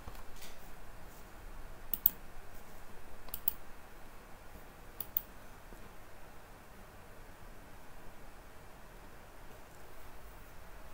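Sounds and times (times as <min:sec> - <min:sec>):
light sharp clicks: 0:01.9 - 0:02.2, 0:03.3 - 0:03.6, 0:05.0 - 0:05.3.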